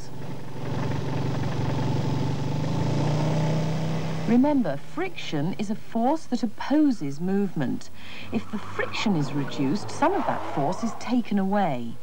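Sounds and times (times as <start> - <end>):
motorcycle engine running: 0.0 - 5.6.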